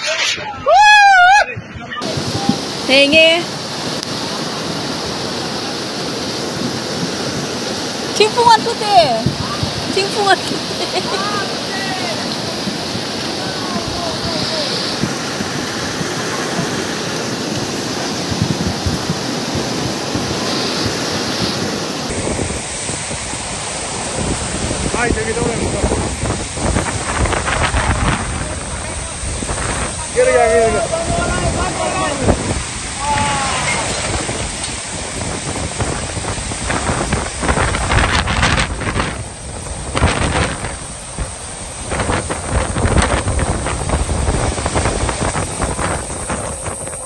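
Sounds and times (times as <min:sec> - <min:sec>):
floodwater rushing: 0:00.0 - 0:47.0
wind buffeting microphone: 0:00.0 - 0:47.0.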